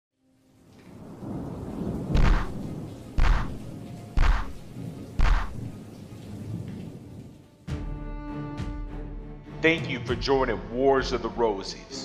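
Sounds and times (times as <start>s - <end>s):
rain: 0.2s - 8.0s
thunder rumbling: 0.9s - 7.6s.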